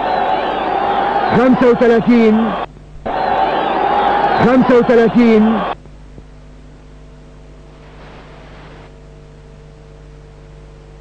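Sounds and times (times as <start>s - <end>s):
electrical mains hum: 0.0s - 11.0s
tape hiss: 0.0s - 11.0s.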